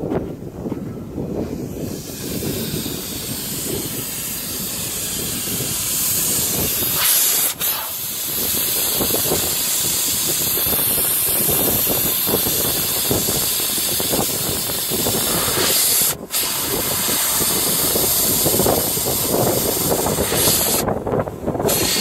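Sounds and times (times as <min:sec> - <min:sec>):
air hissing out of tyre valve: 0:01.5 - 0:21.0, 0:21.6 - 0:22.0.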